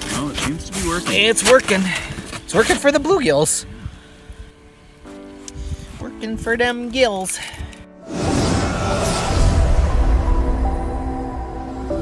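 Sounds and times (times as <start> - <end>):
sustained chord tones: 8.7 - 12.0.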